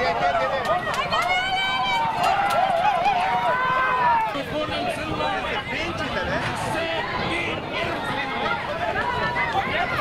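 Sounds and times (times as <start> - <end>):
spectators shouting: 0.0 - 10.0.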